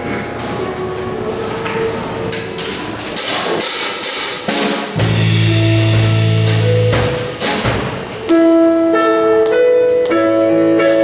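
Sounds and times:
cymbal strikes: 3.2s - 8.5s
held band chords: 4.0s - 11.0s
deep bass note: 5.0s - 8.0s.

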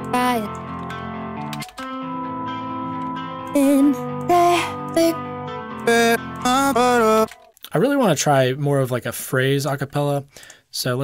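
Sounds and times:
guitar chords with long reverb: 0.0s - 7.3s.

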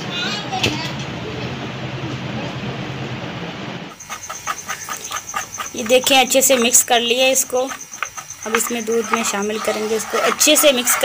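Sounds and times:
spoon stirring in steel bowl: 4.0s - 11.0s.

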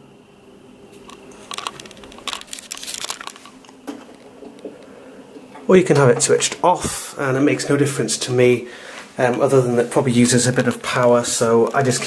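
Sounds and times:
handling rustling and clicks: 1.0s - 4.9s.

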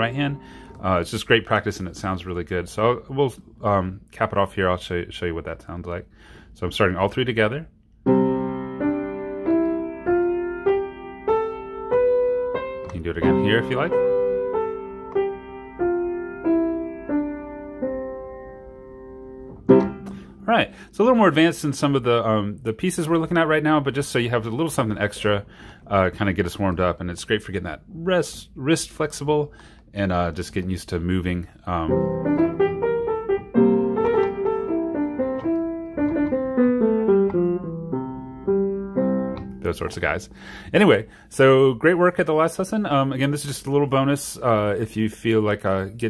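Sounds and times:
piano scale: 0.0s - 2.0s, 8.0s - 21.5s, 31.7s - 40.6s.

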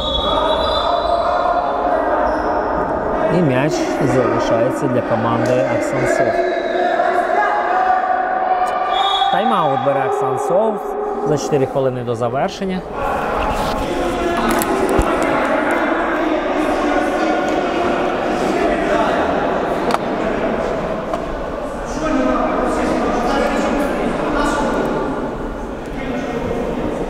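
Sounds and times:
murmur of voices in echoing hall: 0.0s - 27.0s.

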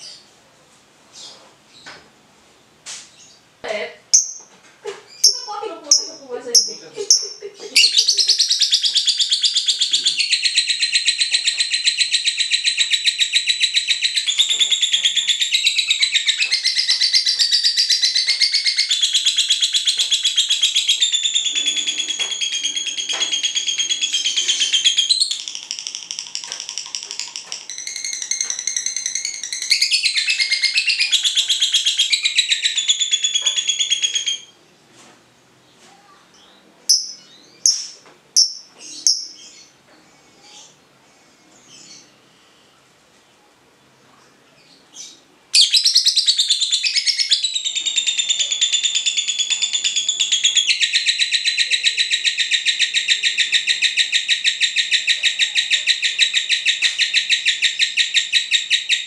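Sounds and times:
lovebird chattering trill: 4.1s - 4.5s, 5.1s - 34.5s, 36.9s - 39.7s, 45.6s - 59.0s.

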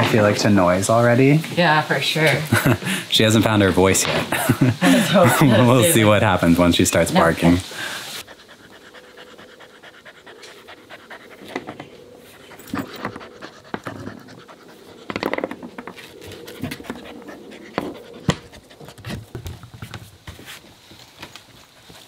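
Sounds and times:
puppy panting: 7.9s - 20.5s, 21.2s - 22.0s
paws on wooden floor: 8.2s - 22.0s
puppy gnawing chew toy: 8.2s - 22.0s.

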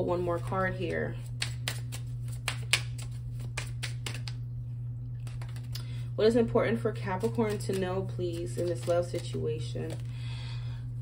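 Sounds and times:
steady low hum: 0.0s - 11.0s
cards being shuffled: 0.4s - 4.5s, 5.2s - 6.0s, 7.0s - 10.1s.

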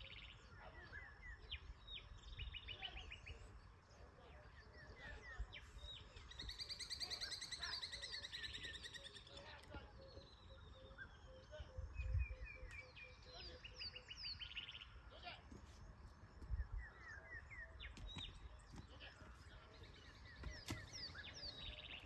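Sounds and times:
birds singing and chirping: 0.0s - 22.0s.

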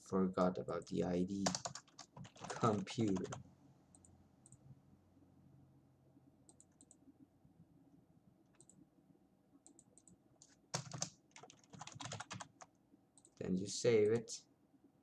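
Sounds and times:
typing on computer keyboard: 1.4s - 3.4s, 9.7s - 13.4s.

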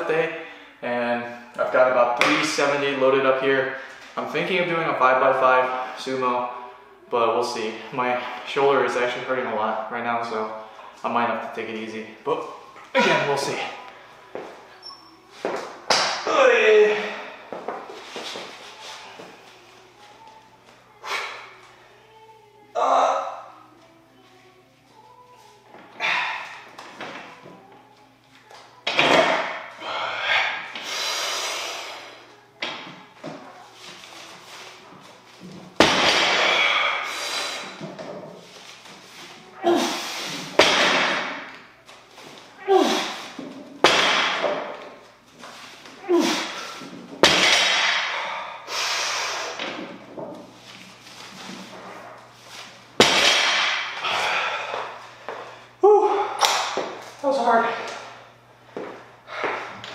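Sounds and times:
person grunting: 42.6s - 43.2s, 55.8s - 56.5s
person breathing hard: 54.0s - 56.4s.

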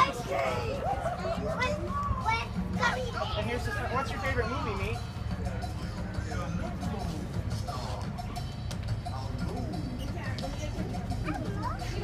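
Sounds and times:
children calling out: 0.0s - 3.2s.

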